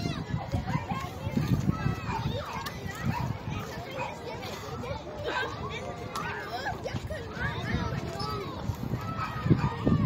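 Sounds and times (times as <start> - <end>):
children calling and chattering: 0.0 - 10.0
wind on microphone: 0.0 - 10.0.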